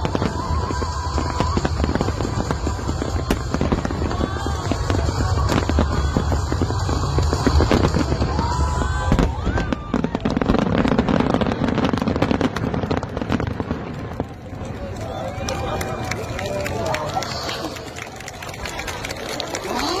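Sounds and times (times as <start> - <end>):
crowd voices: 0.0 - 20.0
fireworks crackling and popping: 0.0 - 20.0.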